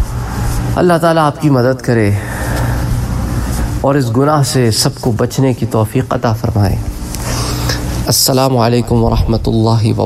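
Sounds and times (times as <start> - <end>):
low rumble with hiss: 0.0 - 10.0
man speaking: 8.0 - 10.0.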